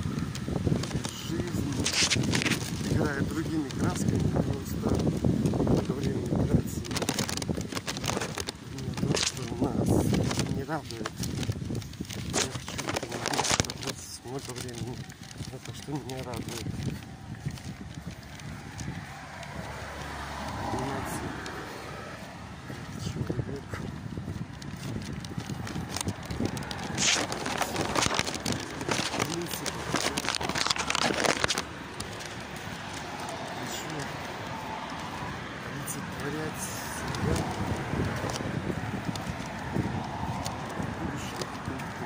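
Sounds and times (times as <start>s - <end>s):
footsteps walking: 0.0s - 42.0s
car passing by: 18.2s - 23.3s, 31.5s - 42.0s.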